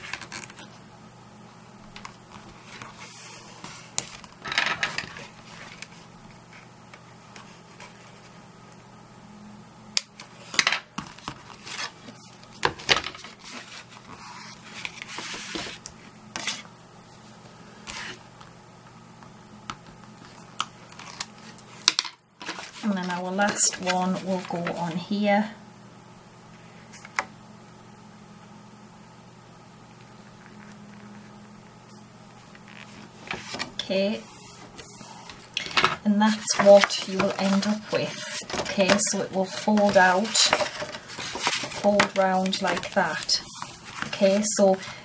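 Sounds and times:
paper rustling: 0:10.4 - 0:16.7, 0:20.2 - 0:25.0, 0:32.4 - 0:45.0.

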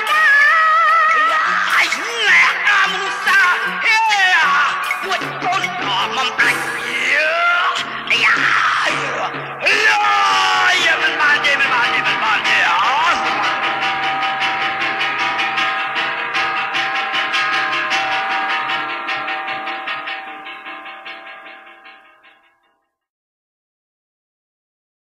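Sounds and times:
person singing: 0:00.0 - 0:14.6
instrumental chords over a beat: 0:00.0 - 0:20.5.

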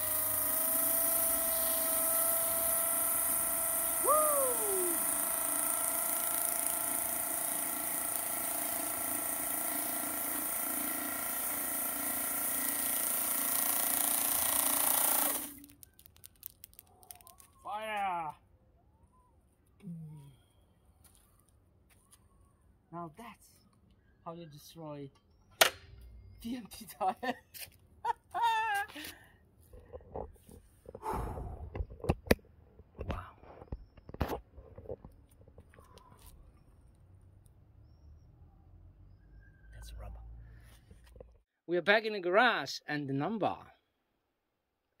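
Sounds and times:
electric motor whine: 0:00.0 - 0:15.8
man's high-pitched vocal exclamation: 0:04.0 - 0:05.0
man laughing: 0:26.9 - 0:29.1.

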